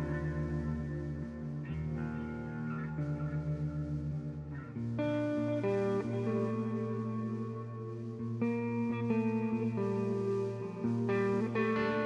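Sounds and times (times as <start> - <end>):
bass guitar: 0.0 - 12.0
electric guitar chords: 0.0 - 12.0.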